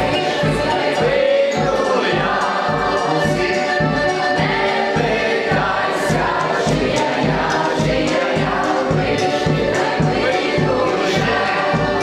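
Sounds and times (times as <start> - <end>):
folk song with group singing: 0.0 - 12.0.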